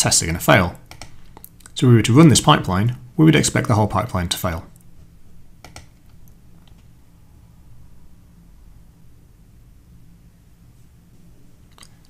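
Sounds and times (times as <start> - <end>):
low room hum: 0.0 - 12.0
computer mouse clicks: 0.9 - 1.8, 5.6 - 6.9.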